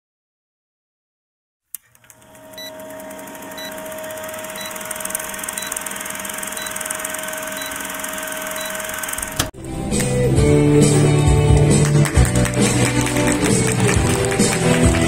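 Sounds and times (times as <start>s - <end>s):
film projector whirr and hum: 1.8s - 9.5s
short high beeps: 4.6s - 5.0s, 6.5s - 8.9s.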